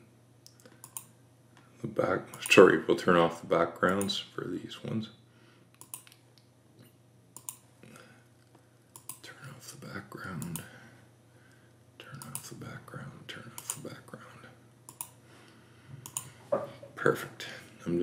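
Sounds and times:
computer mouse clicking: 0.5s - 1.1s, 5.8s - 6.5s, 7.4s - 7.6s, 8.9s - 9.2s, 10.3s - 10.7s, 12.2s - 12.5s, 13.6s - 13.9s, 14.9s - 15.2s, 16.0s - 16.4s.

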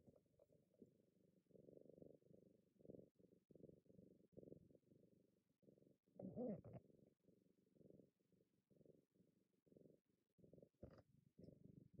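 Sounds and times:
cat purring: 0.0s - 12.0s.

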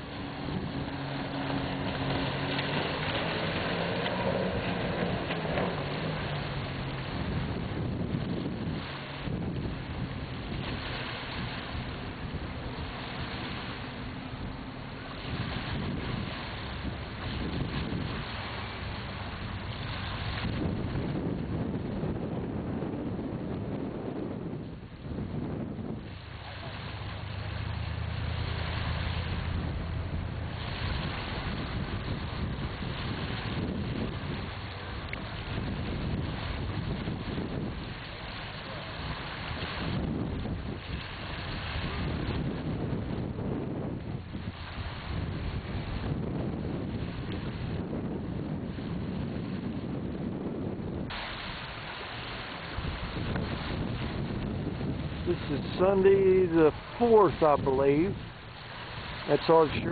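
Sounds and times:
strong wind on microphone: 0.0s - 59.9s.

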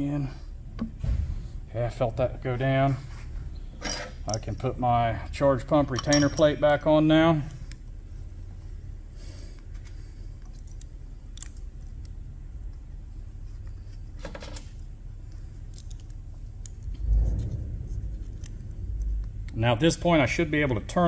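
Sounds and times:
low background rumble: 0.0s - 21.0s
light metal clicks and clink: 3.8s - 4.7s, 5.9s - 6.7s.

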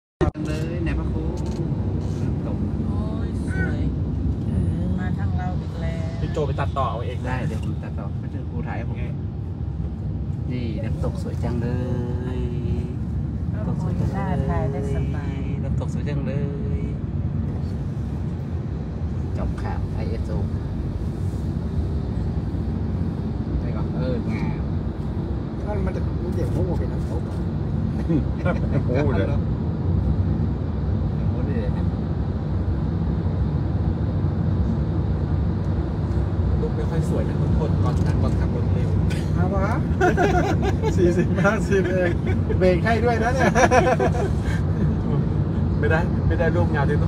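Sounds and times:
people talking: 0.2s - 3.9s, 4.5s - 9.1s, 10.5s - 17.0s, 25.6s - 27.4s, 28.0s - 29.4s, 36.6s - 45.2s, 45.8s - 47.0s
road and engine rumble: 0.2s - 47.0s.

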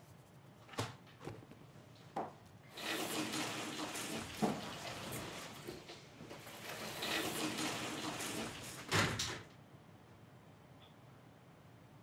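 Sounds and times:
sliding glass door rolling open: 2.7s - 9.5s.

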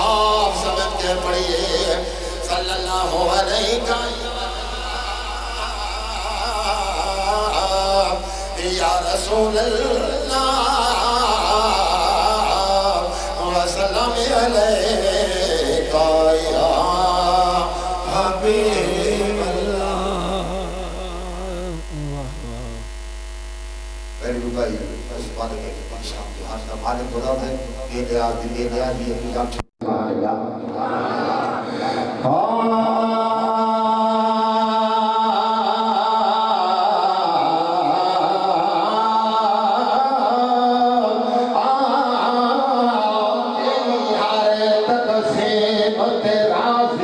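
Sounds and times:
man chanting into a microphone: 0.0s - 22.9s, 24.2s - 47.0s
low electrical hum: 0.0s - 45.4s
man speaking through microphone: 24.2s - 30.7s.

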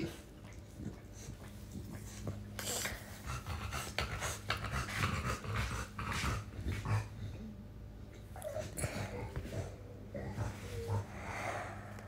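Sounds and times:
animal panting: 0.5s - 7.2s.

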